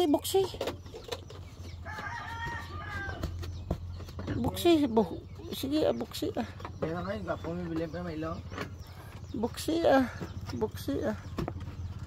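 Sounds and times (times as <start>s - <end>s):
rooster crowing: 1.8s - 3.3s.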